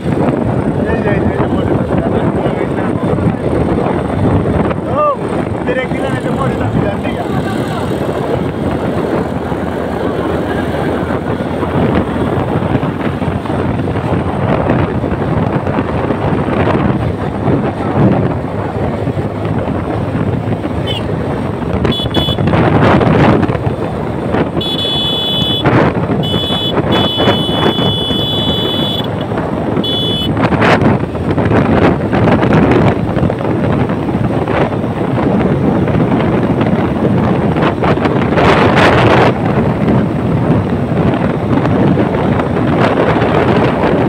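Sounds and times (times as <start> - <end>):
motorcycle engine: 0.0 - 44.0
wind rushing over microphone: 0.0 - 44.0.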